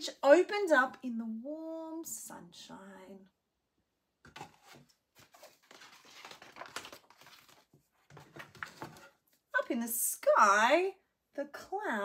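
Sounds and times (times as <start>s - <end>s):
book page turning: 4.3s - 9.2s.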